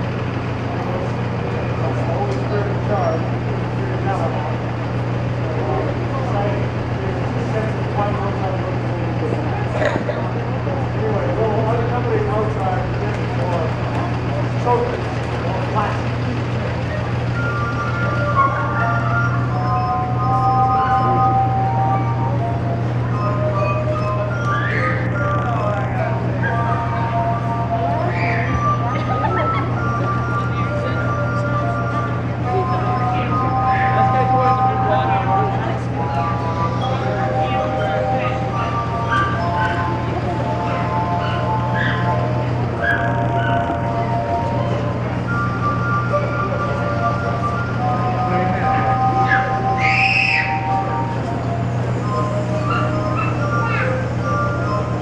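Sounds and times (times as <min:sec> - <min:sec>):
steady low hum: 0:00.0 - 0:55.0
short high cry: 0:49.2 - 0:50.8.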